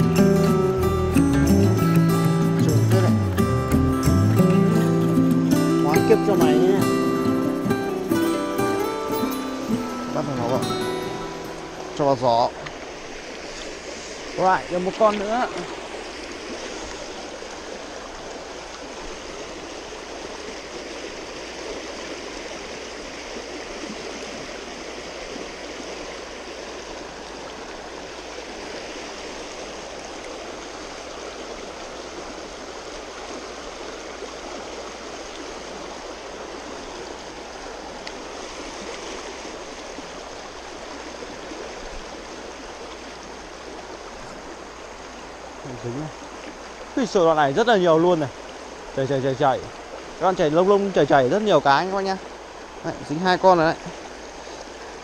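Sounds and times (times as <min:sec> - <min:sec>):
stream water flowing: 0:00.0 - 0:55.0.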